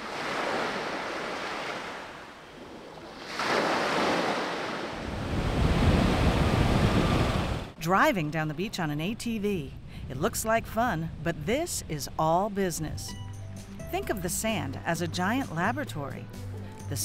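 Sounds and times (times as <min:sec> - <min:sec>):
ocean surf on sandy beach: 0:00.0 - 0:07.8
wind rumbling on microphone: 0:04.5 - 0:07.8.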